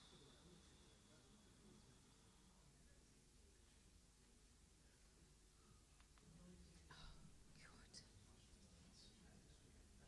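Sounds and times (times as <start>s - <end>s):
faint whispered voices: 0.0s - 10.0s.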